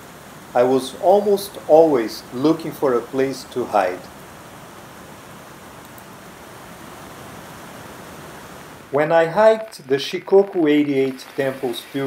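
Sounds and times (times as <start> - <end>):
rain on plastic sheeting: 0.0 - 12.0.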